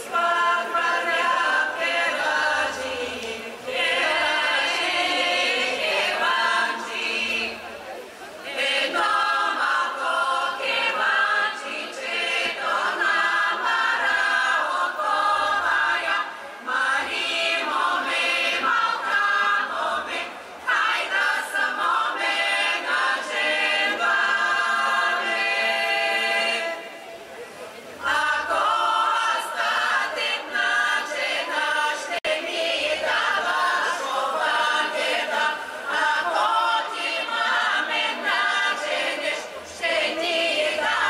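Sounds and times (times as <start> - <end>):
women's choir singing folk song: 0.0 - 41.0.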